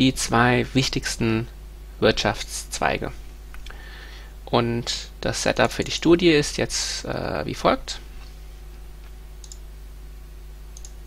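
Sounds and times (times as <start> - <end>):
low electrical hum: 0.0 - 11.0
faint short clicks: 9.4 - 9.6, 10.8 - 11.0.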